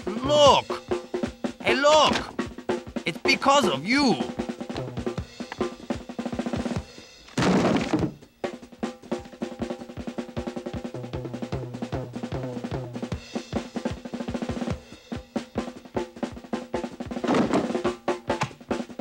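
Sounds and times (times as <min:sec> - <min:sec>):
percussive background music: 0:04.2 - 0:14.9.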